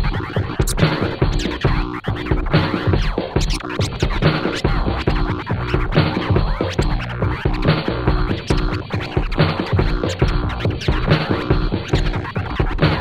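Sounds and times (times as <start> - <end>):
looping hip-hop beat: 0.0 - 13.0
turntable scratching: 0.0 - 13.0.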